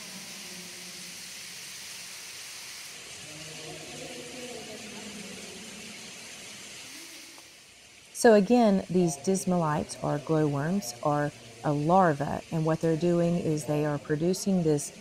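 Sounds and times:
steady hiss: 0.0s - 15.0s
distant people talking: 3.2s - 6.4s.

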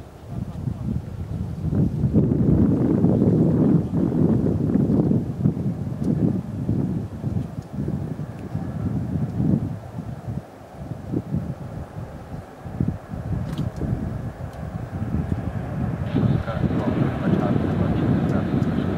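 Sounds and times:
distant turboprop aircraft rumble: 0.0s - 18.9s
wind buffeting microphone: 0.0s - 18.9s.

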